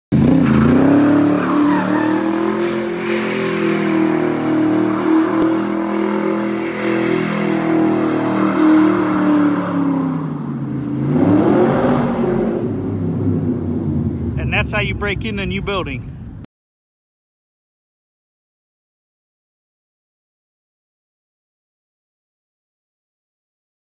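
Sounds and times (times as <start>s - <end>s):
car engine revving high: 0.1s - 15.7s
tyres squealing: 0.4s - 4.2s.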